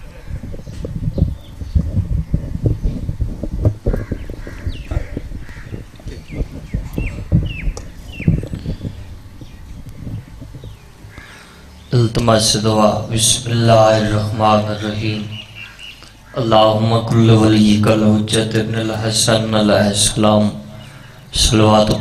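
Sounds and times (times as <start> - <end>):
birds chirping: 0.0 - 22.0
microphone handling knocks: 0.3 - 11.3.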